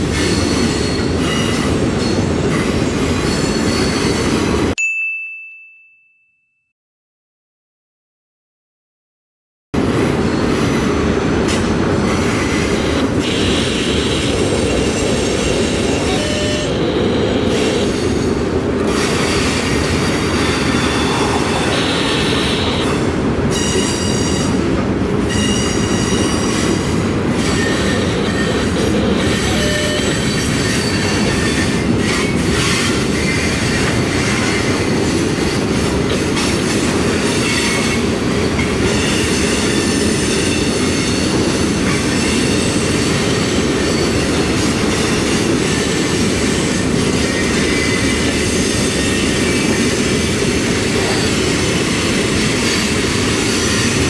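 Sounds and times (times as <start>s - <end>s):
train wheels rumbling on rail: 0.0s - 4.8s, 9.8s - 54.0s
high-pitched wheel squeal: 19.2s - 24.6s, 27.4s - 35.6s.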